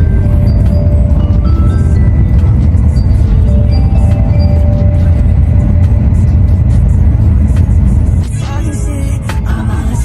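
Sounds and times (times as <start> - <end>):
background music: 0.0 - 10.0
low rumble of train running: 0.0 - 10.0.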